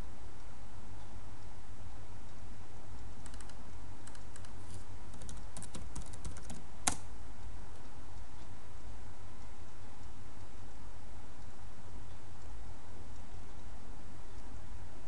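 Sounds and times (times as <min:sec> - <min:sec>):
low electrical hum: 0:00.0 - 0:15.0
keyboard typing: 0:03.2 - 0:07.0.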